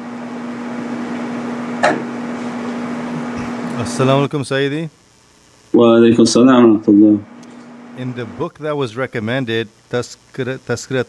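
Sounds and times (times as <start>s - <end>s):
steady low hum: 0.0s - 11.0s
background hiss: 2.0s - 11.0s.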